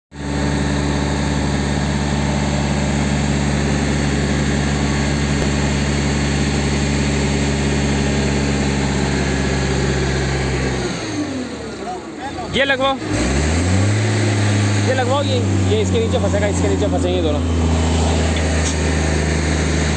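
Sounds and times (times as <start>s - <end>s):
crane engine running: 0.1s - 19.9s.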